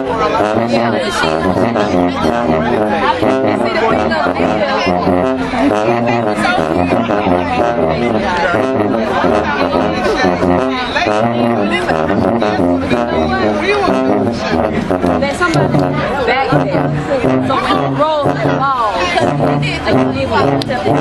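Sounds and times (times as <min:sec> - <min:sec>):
loud crowd chatter: 0:00.0 - 0:21.0
marching band sousaphones: 0:00.0 - 0:21.0.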